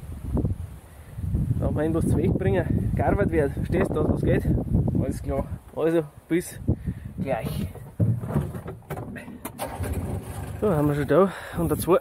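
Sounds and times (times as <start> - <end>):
body rattle: 7.2 - 11.2
utility vehicle engine running: 9.1 - 11.1.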